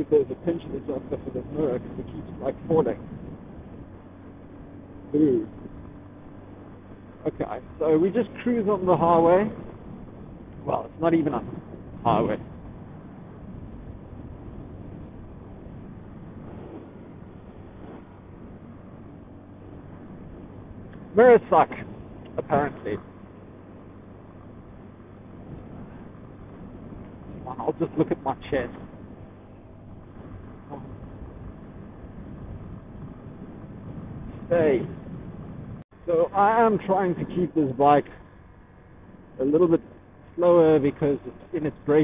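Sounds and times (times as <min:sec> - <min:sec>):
wind on microphone: 0:00.0 - 0:35.9
motorcycle engine drone: 0:00.0 - 0:42.0
road noise: 0:00.0 - 0:42.0.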